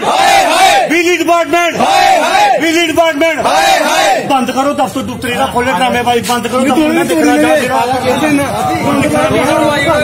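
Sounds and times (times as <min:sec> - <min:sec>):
men shouting angrily: 0:00.0 - 0:04.6.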